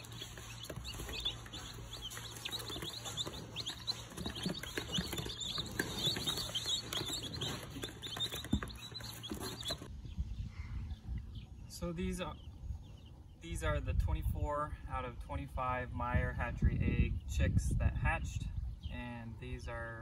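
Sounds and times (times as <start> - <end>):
chicks peeping: 0.0 - 14.4.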